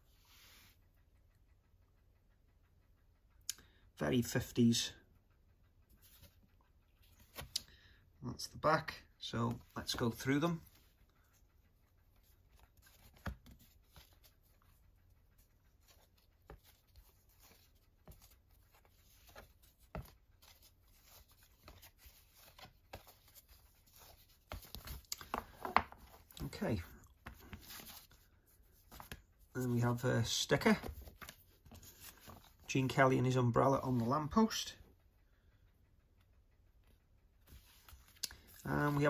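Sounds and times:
cards tapping together: 0:15.9 - 0:26.2.

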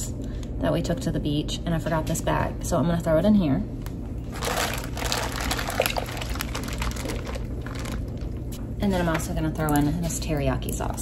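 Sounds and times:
juice pouring: 0:04.3 - 0:08.6.

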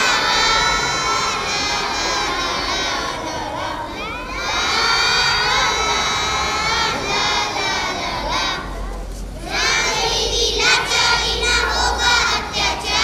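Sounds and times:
children singing in unison: 0:00.0 - 0:13.0.

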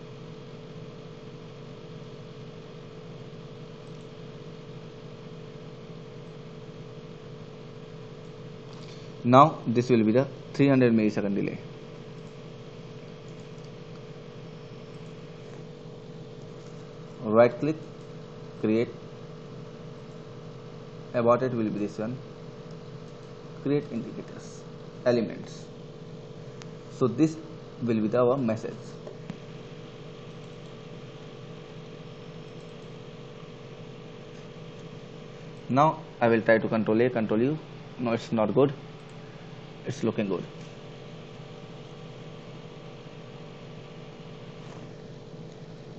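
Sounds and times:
background hum and hiss: 0:00.0 - 0:45.9
click: 0:03.8 - 0:04.1.

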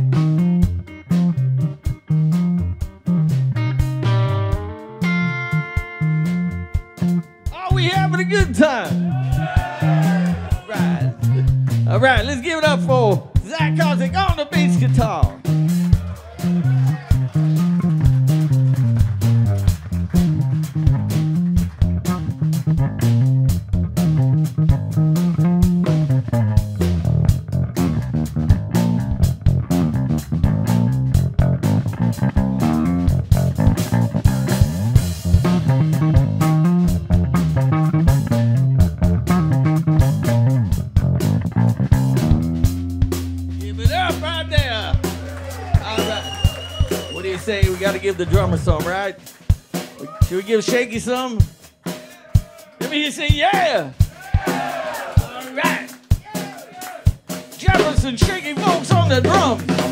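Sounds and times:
electric bass guitar solo: 0:00.0 - 0:49.0, 0:58.6 - 0:59.9
steady beat: 0:00.0 - 0:59.9
person calling out: 0:07.5 - 0:15.4, 0:43.6 - 0:46.3, 0:50.0 - 0:51.3, 0:51.9 - 0:54.6, 0:55.2 - 0:57.1.

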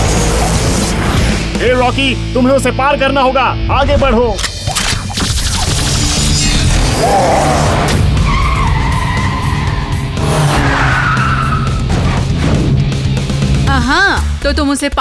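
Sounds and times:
background music with low notes: 0:00.0 - 0:15.0
cartoon cars driving and skidding: 0:05.5 - 0:12.7.

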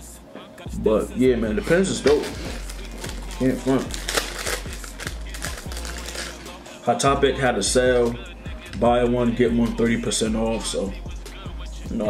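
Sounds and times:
faint background music: 0:00.0 - 0:12.0
packaging clicks and rustling: 0:02.0 - 0:06.4.

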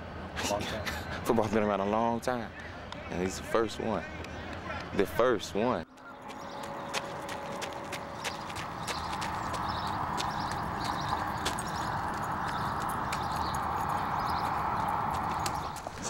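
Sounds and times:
running footsteps on pavement: 0:02.3 - 0:16.0
steady rushing noise: 0:05.9 - 0:16.0.

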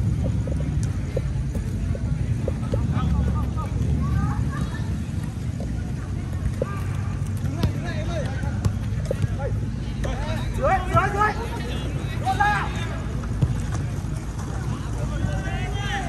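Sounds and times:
steady low rumble: 0:00.0 - 0:10.0
voices shouting and calling: 0:01.8 - 0:16.0.

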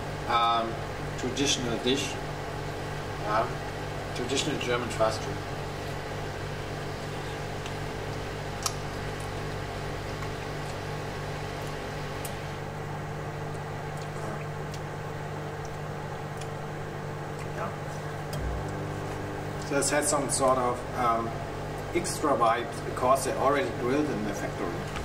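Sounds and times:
microwave oven humming: 0:00.0 - 0:25.0.

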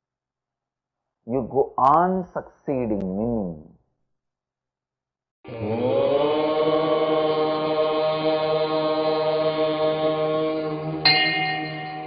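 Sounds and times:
chime-like musical sting: 0:11.1 - 0:12.0.

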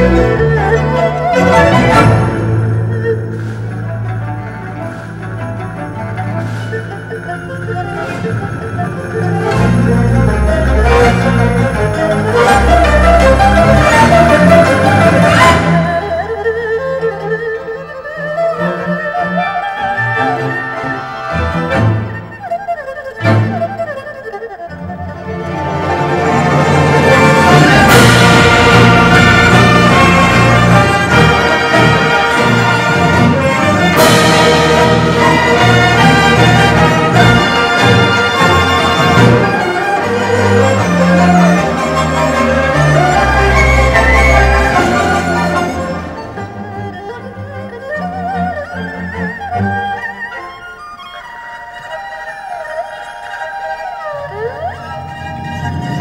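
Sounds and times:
solo erhu melody: 0:00.0 - 0:56.0
traditional orchestra accompaniment: 0:00.0 - 0:56.0.

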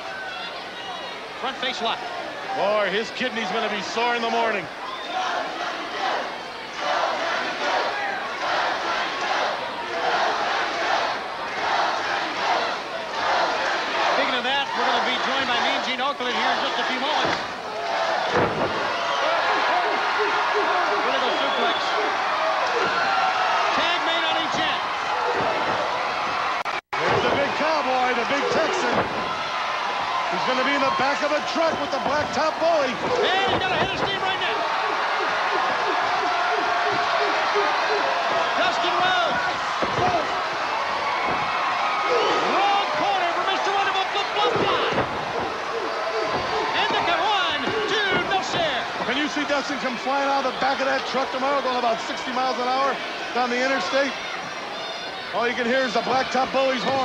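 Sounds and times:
arena crowd noise: 0:00.0 - 0:57.0.

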